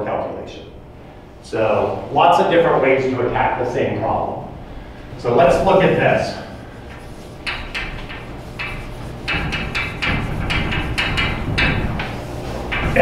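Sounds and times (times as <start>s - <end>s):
chalk tapping and scratching: 5.5s - 13.0s.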